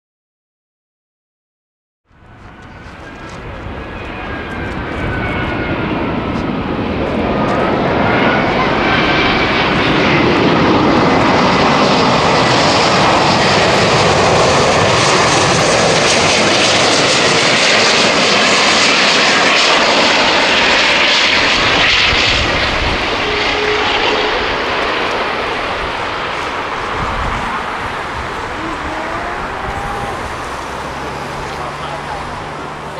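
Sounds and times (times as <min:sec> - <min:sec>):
jet airliner rushing: 0:02.1 - 0:32.9.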